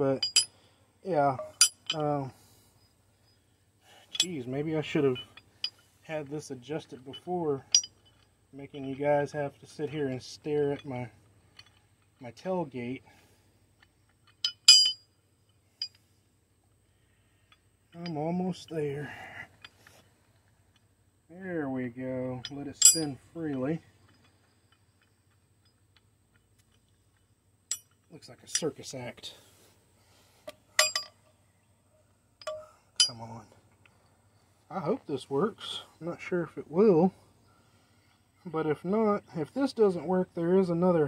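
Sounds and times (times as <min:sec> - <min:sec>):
metal tool parts clinking: 0:00.2 - 0:00.6, 0:01.4 - 0:02.2, 0:03.9 - 0:05.9, 0:06.8 - 0:09.0, 0:09.6 - 0:12.3, 0:13.1 - 0:15.1, 0:22.3 - 0:28.9, 0:30.5 - 0:31.3, 0:32.4 - 0:34.0.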